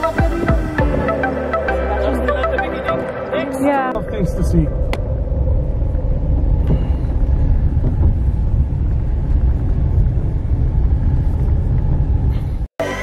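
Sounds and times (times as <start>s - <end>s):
car interior road rumble: 2.8s - 13.0s.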